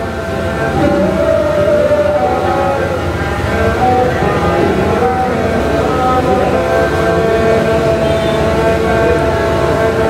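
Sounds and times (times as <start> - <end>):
bowed fiddles playing: 0.0 - 10.0
man singing: 0.0 - 10.0.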